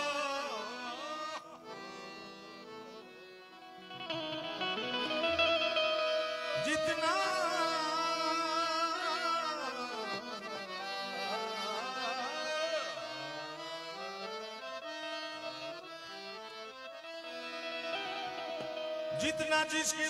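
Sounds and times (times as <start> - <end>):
harmonium melody: 0.0 - 20.0.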